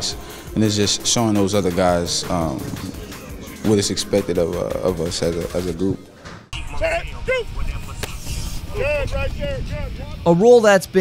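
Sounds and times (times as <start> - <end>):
steady low rumble: 0.0 - 10.3.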